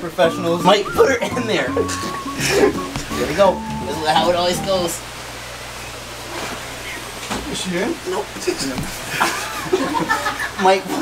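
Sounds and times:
low steady hum: 0.0 - 10.4.

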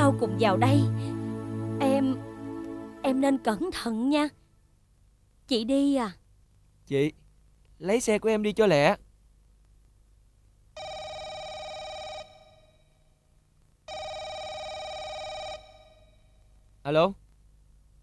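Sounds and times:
landline telephone ringing: 10.8 - 12.7, 13.9 - 16.2.

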